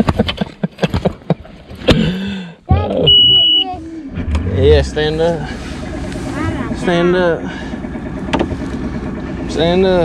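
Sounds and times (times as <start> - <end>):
outboard motor running: 0.0 - 10.0
warning horn beep: 3.0 - 3.8.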